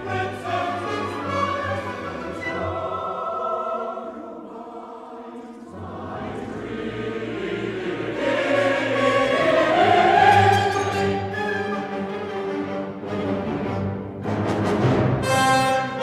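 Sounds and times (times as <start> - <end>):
symphony orchestra playing: 0.0 - 3.8, 5.8 - 16.0
mixed chorus singing: 0.0 - 11.7.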